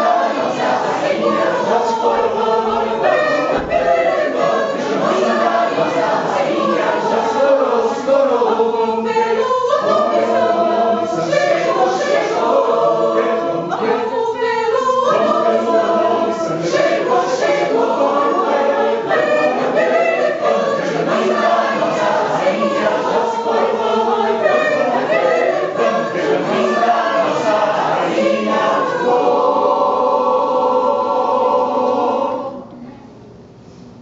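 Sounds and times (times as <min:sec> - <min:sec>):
mixed choir singing: 0:00.0 - 0:32.8.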